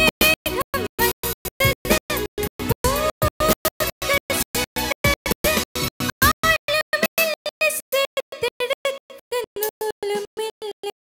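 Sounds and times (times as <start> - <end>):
woman singing into a microphone: 0.0 - 5.6, 6.2 - 11.0.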